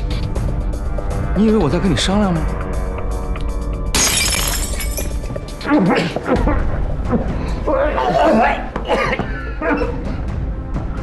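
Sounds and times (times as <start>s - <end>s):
dramatic background music: 0.0s - 11.0s
drinking glass smashing: 3.9s - 5.3s
shattered glass tinkling: 4.0s - 5.3s.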